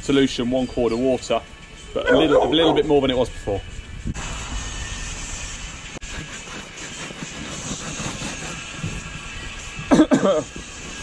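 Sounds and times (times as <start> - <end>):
rag scrubbing rubber: 6.0 - 9.9.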